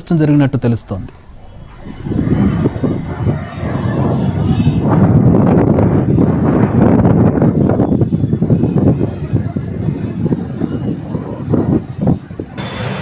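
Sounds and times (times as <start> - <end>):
wind buffeting microphone: 0.8 - 13.0.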